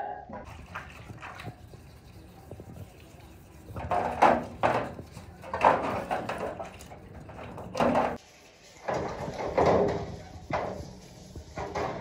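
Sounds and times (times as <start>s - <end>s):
water splashing in a tray: 0.4s - 1.8s.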